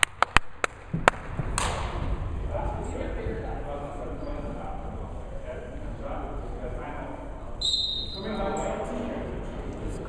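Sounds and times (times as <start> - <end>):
murmur of spectators' voices: 1.7 - 10.0
high whistle blast: 7.6 - 8.4.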